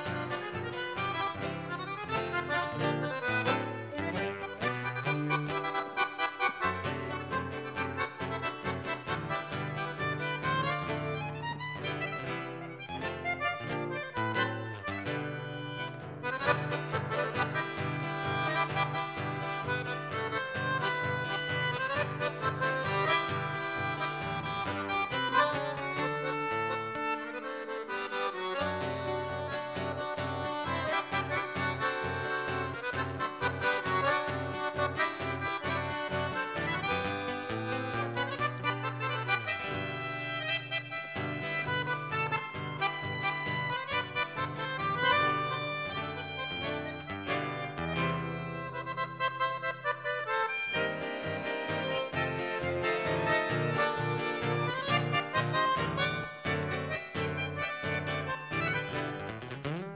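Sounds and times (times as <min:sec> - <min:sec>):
accordion melody: 0:00.0 - 0:59.9
acoustic guitar bass and chords: 0:00.0 - 0:59.9.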